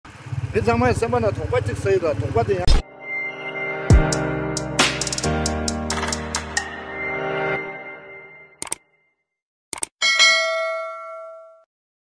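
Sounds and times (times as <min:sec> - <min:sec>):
motorcycle engine idling: 0:00.1 - 0:02.6
man talking: 0:00.5 - 0:02.8.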